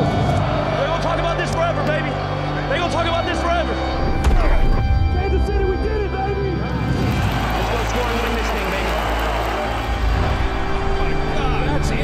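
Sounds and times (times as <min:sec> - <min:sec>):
dramatic music with low bass: 0:00.0 - 0:12.0.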